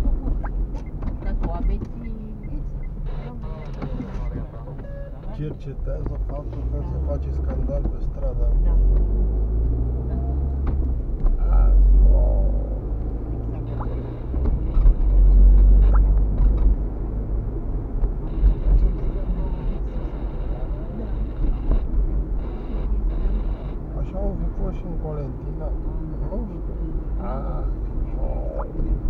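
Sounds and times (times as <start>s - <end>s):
car engine rumble: 0.0s - 29.0s
road noise: 0.0s - 29.0s.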